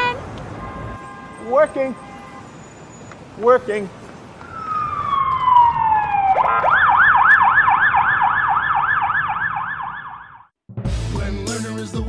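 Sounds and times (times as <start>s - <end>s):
electronic siren wailing and yelping: 4.4s - 10.5s.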